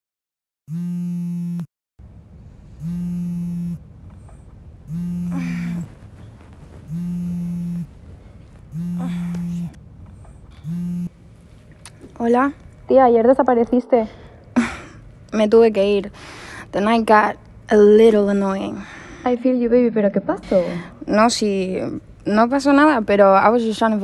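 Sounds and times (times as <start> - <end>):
mobile phone vibrating: 0.7 - 1.7, 2.7 - 3.9, 4.9 - 6.0, 6.8 - 9.8, 10.6 - 11.2
woman groaning sleepily: 5.0 - 5.9, 8.8 - 9.8.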